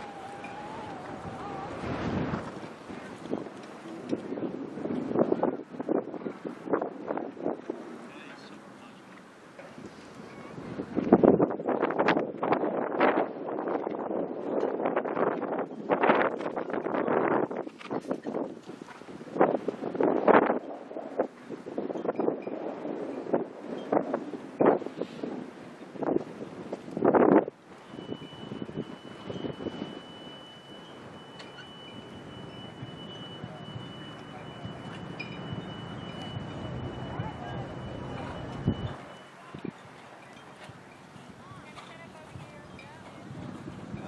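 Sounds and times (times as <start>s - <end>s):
wind buffeting microphone: 0.0s - 8.6s, 9.4s - 44.0s.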